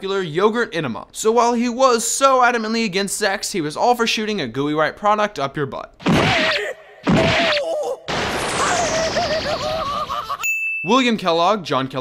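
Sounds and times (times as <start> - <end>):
cartoon character screaming: 6.0 - 10.4
high bell-like ding: 10.4 - 11.2.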